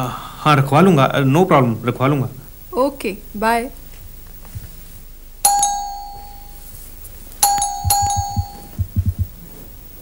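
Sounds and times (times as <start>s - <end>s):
doorbell chiming: 5.5s - 6.6s, 7.4s - 8.8s
low thumps: 7.6s - 9.4s.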